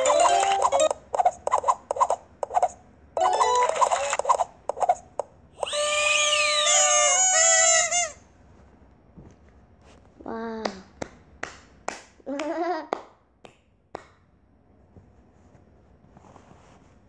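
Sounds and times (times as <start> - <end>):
celebratory game jingle: 0.0 - 0.9, 3.2 - 3.8
game clicks and chiming blips: 0.0 - 1.4, 3.2 - 4.4.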